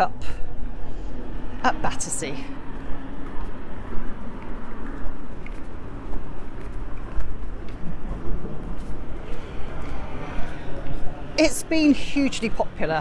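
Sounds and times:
low rumble: 0:00.0 - 0:11.5.

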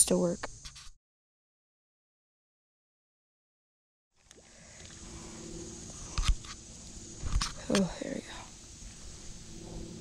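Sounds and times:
faint outdoor background: 0:00.0 - 0:01.0, 0:04.2 - 0:10.0.

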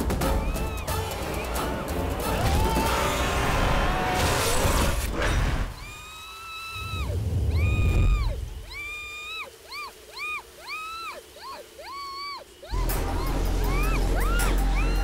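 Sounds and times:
high-pitched whining tones: 0:05.7 - 0:15.0.

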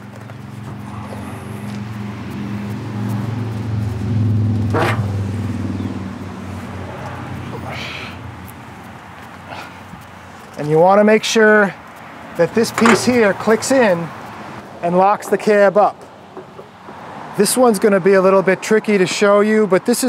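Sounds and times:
vehicle engine hum: 0:00.0 - 0:10.7, 0:11.5 - 0:14.8
sharp clank: 0:12.8 - 0:13.7.

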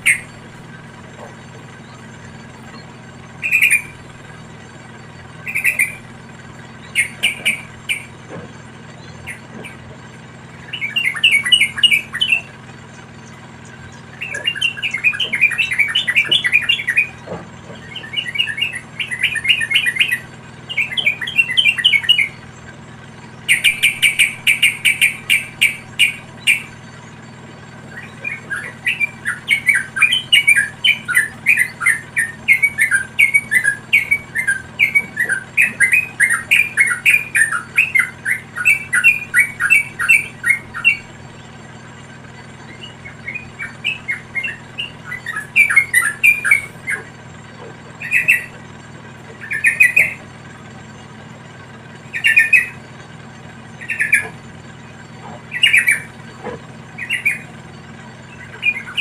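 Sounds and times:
birds chirping: 0:00.0 - 0:59.0.

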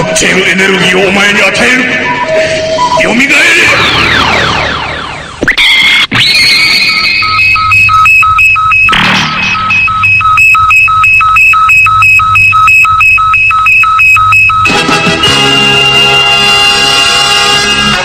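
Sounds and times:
rapid electronic beeping: 0:00.0 - 0:16.3
falling synth sweep: 0:02.0 - 0:12.8.

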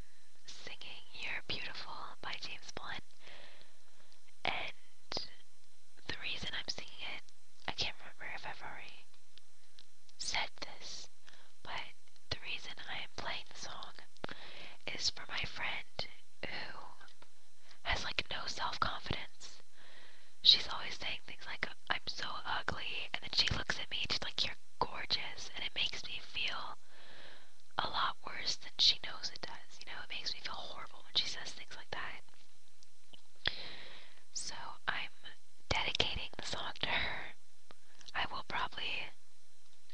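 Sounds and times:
person whispering: 0:00.5 - 0:03.1, 0:04.4 - 0:05.4, 0:06.0 - 0:09.1, 0:10.2 - 0:14.1, 0:14.8 - 0:17.1, 0:17.8 - 0:19.6, 0:20.4 - 0:26.8, 0:27.8 - 0:32.2, 0:34.3 - 0:37.4, 0:38.1 - 0:39.2.

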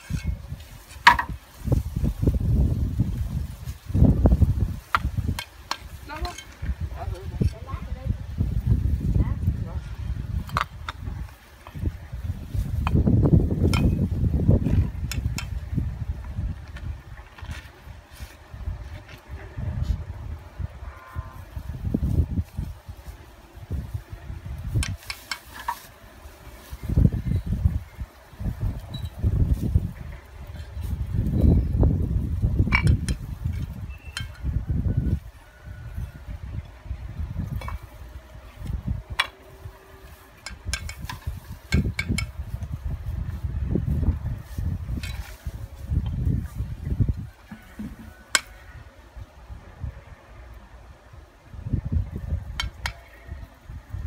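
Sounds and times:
wind buffeting microphone: 0:00.0 - 0:54.0
bricks knocking and clinking: 0:00.1 - 0:01.4.

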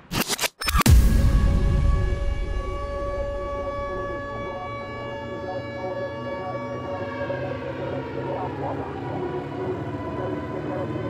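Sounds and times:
siren-like tone: 0:00.6 - 0:11.0.

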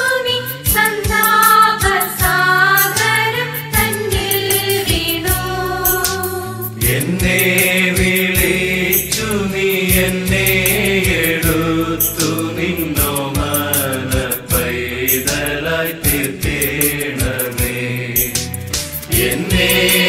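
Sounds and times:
person singing: 0:00.0 - 0:18.4, 0:19.1 - 0:20.0
percussion beat: 0:00.0 - 0:20.0
instrumental accompaniment: 0:00.4 - 0:20.0.

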